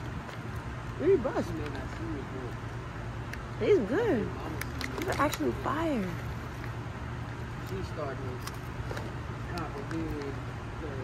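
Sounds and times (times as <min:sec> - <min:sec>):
steady low hum: 0:00.0 - 0:11.0
popcorn crunching: 0:04.4 - 0:05.6.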